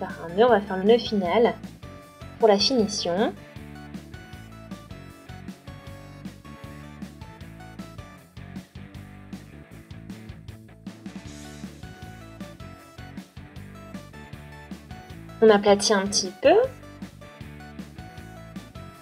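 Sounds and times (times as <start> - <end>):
quiet background music: 0.0 - 19.0.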